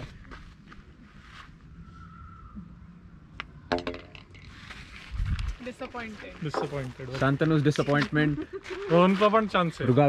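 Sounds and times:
putter striking golf ball: 3.4 - 4.3.

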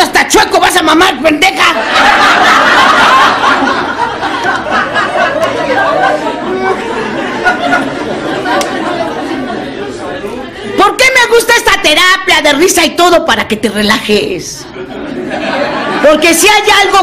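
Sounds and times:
audience laughing and chattering: 1.6 - 11.0, 14.6 - 17.0.

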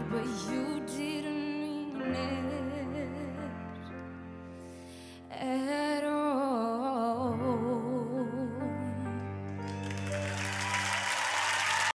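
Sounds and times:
audience applauding: 9.6 - 12.0.

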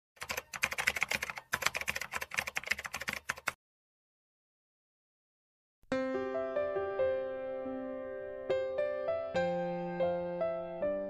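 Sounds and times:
rapid typing on keyboard: 0.2 - 3.6.

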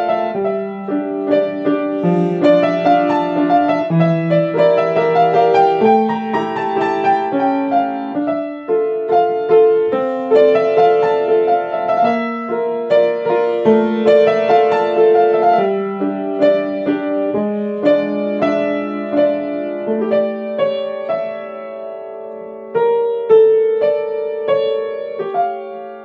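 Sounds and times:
slow piano melody with chords: 0.0 - 26.0.

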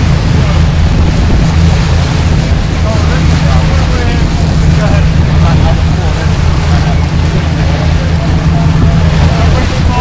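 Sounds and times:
boat engines droning: 0.0 - 10.0
water rushing in wake: 0.0 - 10.0.

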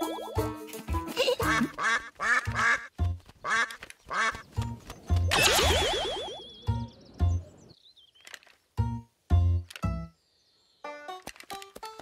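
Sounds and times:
bouncy cartoon music: 0.0 - 7.6, 8.8 - 10.1.

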